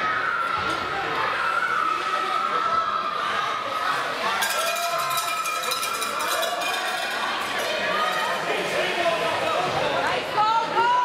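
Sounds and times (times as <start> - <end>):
crowd voices: 0.0 - 11.0
cowbell shaken rapidly: 4.4 - 8.5.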